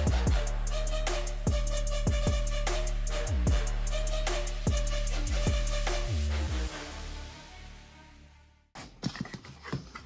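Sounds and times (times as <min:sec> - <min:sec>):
background music: 0:00.0 - 0:08.7.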